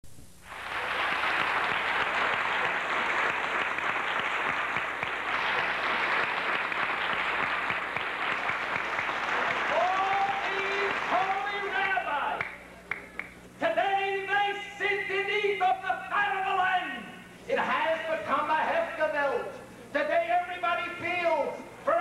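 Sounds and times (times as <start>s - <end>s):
audience applauding: 0.4s - 13.3s.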